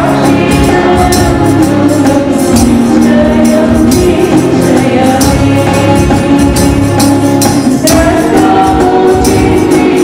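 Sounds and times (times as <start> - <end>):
instrumental accompaniment: 0.0 - 10.0
women's choir singing: 0.0 - 10.0.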